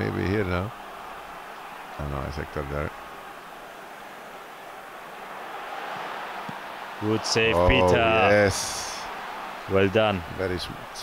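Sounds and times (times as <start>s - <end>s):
stadium crowd roar: 0.0s - 11.0s.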